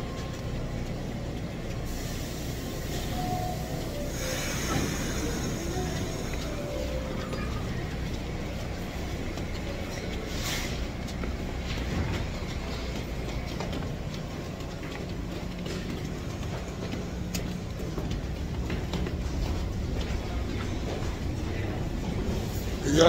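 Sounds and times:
train clicks and rattles: 0.0 - 23.0
train rumbling: 0.0 - 23.0.

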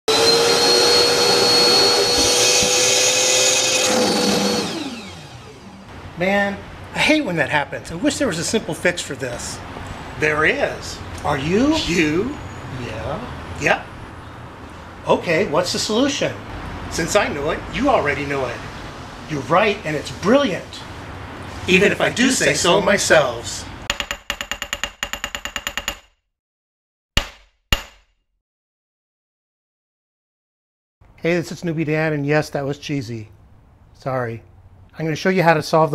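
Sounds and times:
shop vacuum whining: 0.1 - 5.9
vacuum motor spinning down: 0.1 - 5.9
rapid metallic clicks: 23.9 - 26.1.

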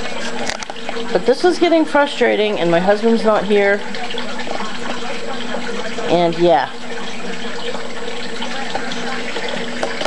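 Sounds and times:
stove blower fan running: 0.0 - 10.0.

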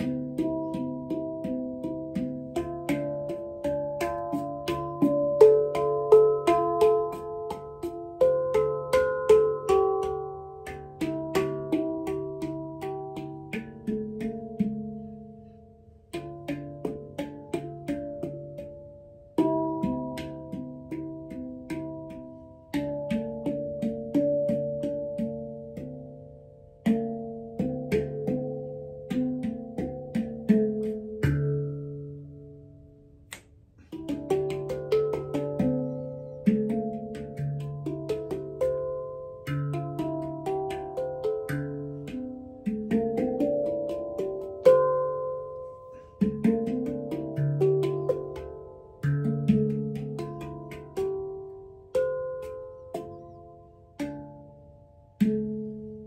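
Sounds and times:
handpan played by hand: 0.0 - 56.0.

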